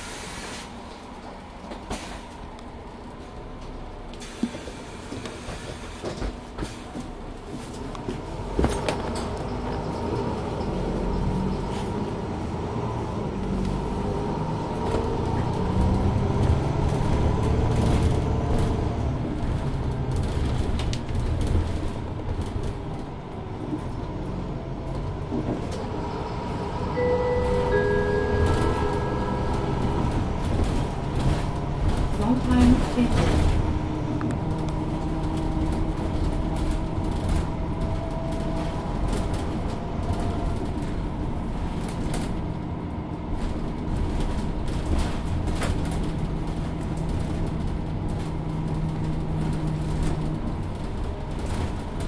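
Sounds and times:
bus diesel engine under load: 0.0s - 52.0s
short beeping tones: 27.0s - 30.1s.

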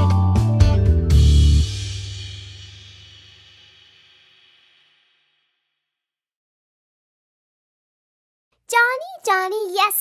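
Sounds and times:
crash cymbal: 1.1s - 6.0s.

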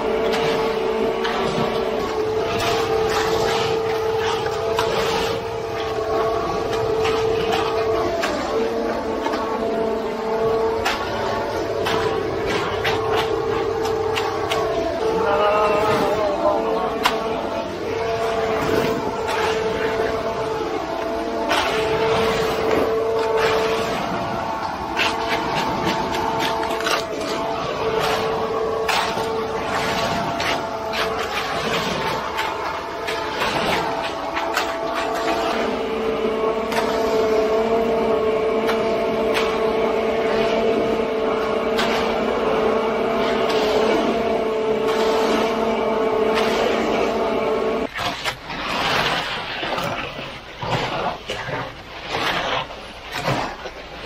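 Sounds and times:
conveyor truck whining: 0.0s - 54.0s
rakes scraping wet concrete: 0.0s - 54.0s.

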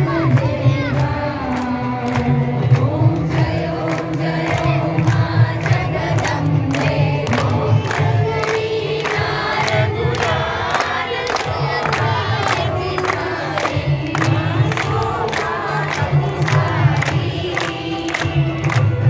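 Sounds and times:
crowd singing a devotional song: 0.0s - 19.0s
group hand-clapping: 0.0s - 19.0s.

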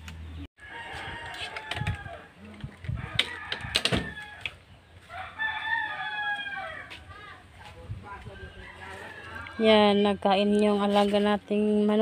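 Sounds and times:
rooster crowing: 0.6s - 2.3s, 3.0s - 7.0s, 8.3s - 9.8s.

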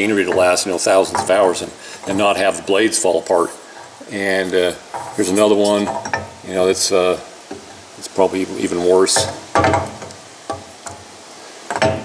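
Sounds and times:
man talking: 0.0s - 7.3s, 8.0s - 9.5s
low steady background noise: 0.0s - 12.0s.

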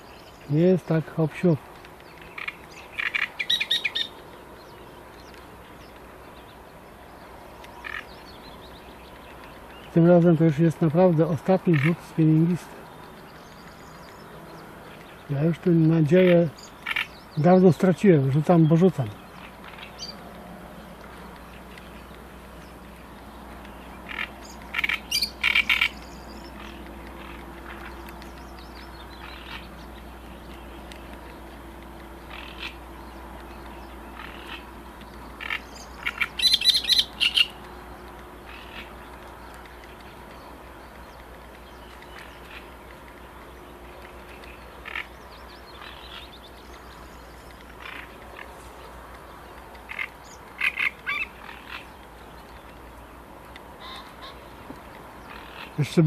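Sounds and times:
rattling animal calls: 0.8s - 4.4s, 7.7s - 8.4s, 9.0s - 56.0s.

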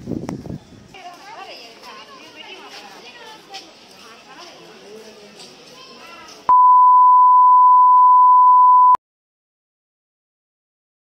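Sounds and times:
faint background chatter: 0.9s - 6.5s
loud electronic beep: 6.5s - 9.0s.

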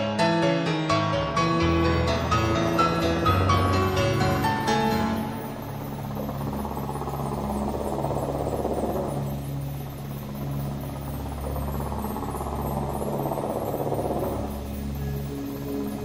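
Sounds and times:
low sustained hum: 1.7s - 16.0s.

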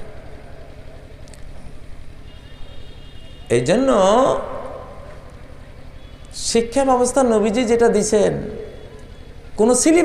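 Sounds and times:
low steady background rumble: 0.0s - 10.0s.

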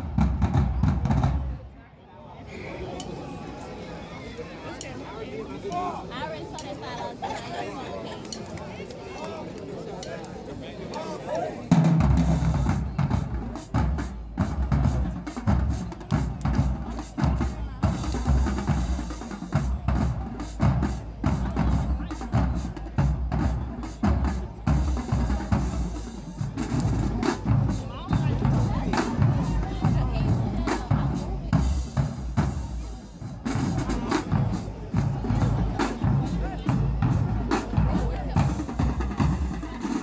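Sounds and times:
marching drumline playing: 0.0s - 1.6s, 11.7s - 40.0s
crowd chatter: 0.0s - 40.0s.

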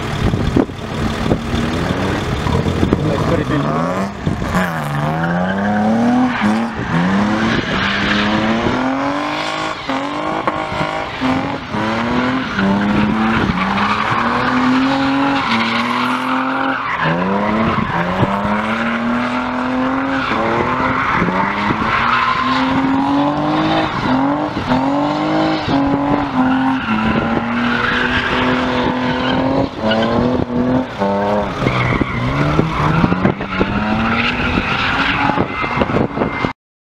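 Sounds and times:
car engine revving hard: 0.0s - 36.3s
tyres squealing on tarmac: 1.8s - 30.3s, 31.1s - 36.5s.

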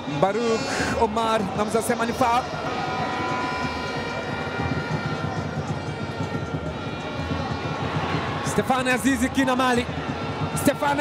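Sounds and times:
stadium crowd noise: 0.0s - 11.0s
drone of fans' horns: 2.5s - 6.1s.

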